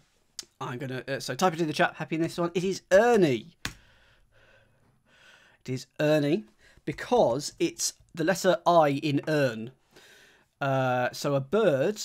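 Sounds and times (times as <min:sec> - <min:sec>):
man speaking: 0:00.4 - 0:03.6, 0:05.6 - 0:09.8, 0:10.6 - 0:12.0
man breathing faintly: 0:03.7 - 0:05.6, 0:09.8 - 0:10.6.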